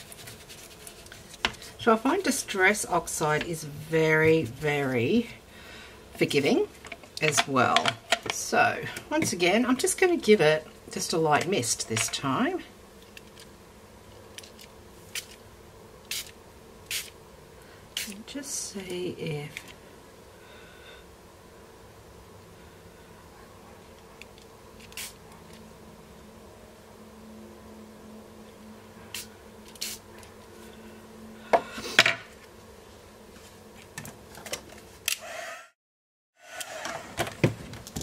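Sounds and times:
faint steady hum: 0.0 - 35.5
small taps and clicks handling things: 6.8 - 8.4.

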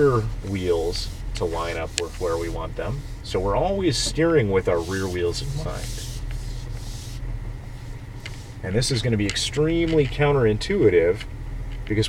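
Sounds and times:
car engine running at low revs: 0.0 - 12.0.

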